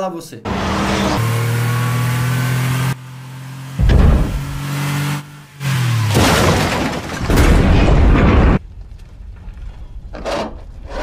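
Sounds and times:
car engine hum: 0.5 - 7.2
loud crash: 6.1 - 8.6
metal crashing and smashing: 6.1 - 8.6.

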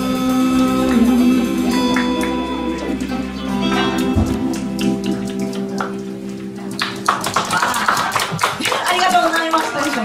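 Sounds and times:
band chord ringing out: 0.2 - 5.2
audience clapping: 0.8 - 10.0.

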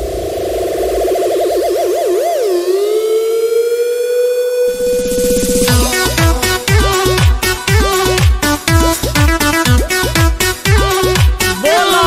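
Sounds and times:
synthesizer holding a steady note: 0.0 - 9.0
fast low pulsing beat: 4.7 - 11.6.

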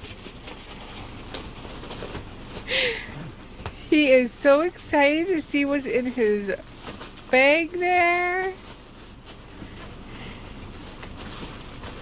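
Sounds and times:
plastic bag rustling and crinkling: 0.0 - 2.7, 5.2 - 12.0.

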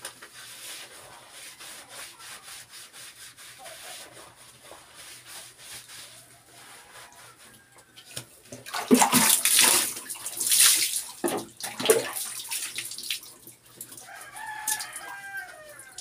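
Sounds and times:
cloth scrubbing wet skin: 0.2 - 16.0
rooster crowing: 6.4 - 8.1, 14.0 - 16.0.

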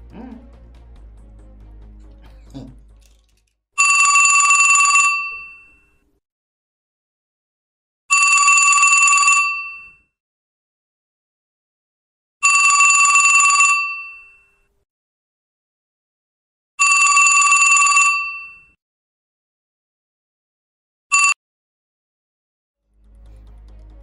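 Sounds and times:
phone ringing: 3.8 - 6.0, 8.1 - 10.0, 12.4 - 14.6, 16.8 - 18.8, 21.1 - 21.4.

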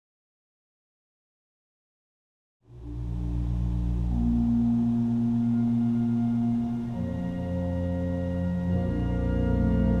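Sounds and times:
pipe organ chords: 2.7 - 10.0.

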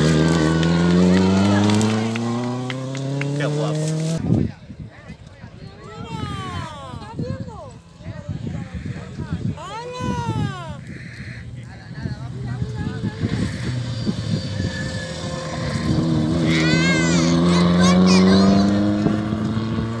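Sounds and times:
rally car engine passing: 0.0 - 4.2, 11.9 - 20.0.

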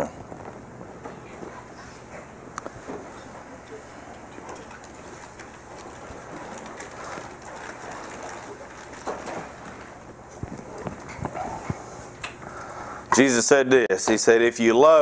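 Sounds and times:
feet shuffling: 0.2 - 12.9
clothes rustling: 1.4 - 12.7
wooden pews knocking and creaking: 2.8 - 11.8.

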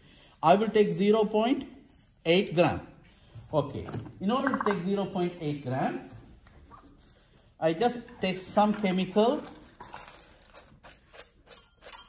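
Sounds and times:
pellets rattling onto glass: 9.8 - 12.0.

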